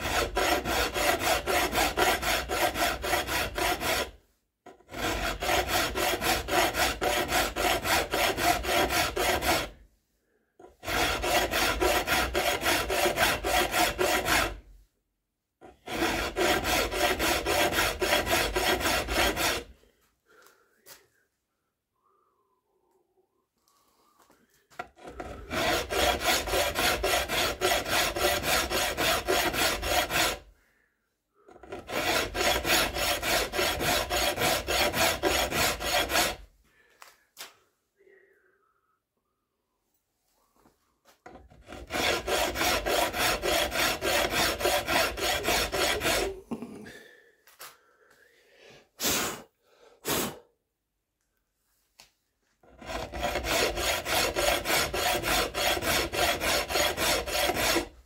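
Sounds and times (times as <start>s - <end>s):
hand file rasping on wood: 0.0s - 9.8s, 10.6s - 14.7s, 15.6s - 19.8s, 24.7s - 30.5s, 31.4s - 36.5s, 41.2s - 46.7s, 52.6s - 58.0s.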